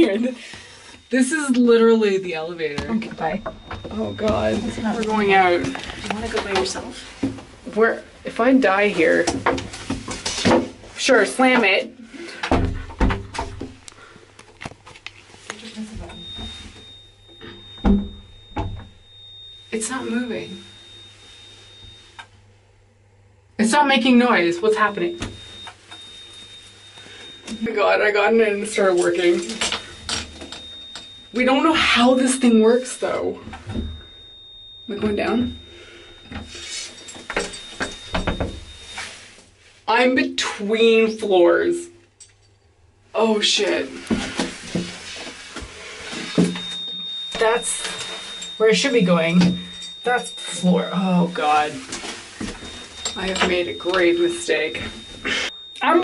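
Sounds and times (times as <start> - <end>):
high-pitched steady tone: 0.0 - 9.4, 15.5 - 22.4, 23.6 - 42.0, 43.2 - 56.0.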